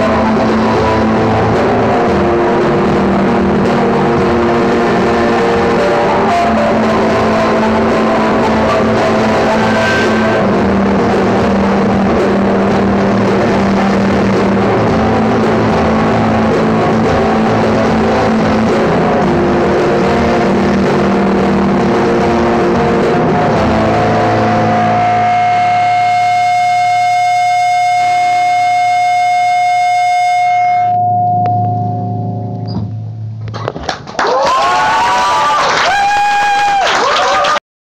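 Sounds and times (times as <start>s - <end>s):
acoustic guitar: 0.0s - 27.2s
loud pitched bending sounds: 0.0s - 36.8s.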